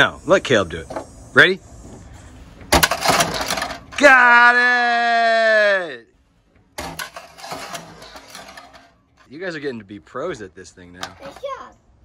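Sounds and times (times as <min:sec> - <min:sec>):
plastic pieces clattering on wood: 0:02.7 - 0:04.0, 0:06.8 - 0:08.9.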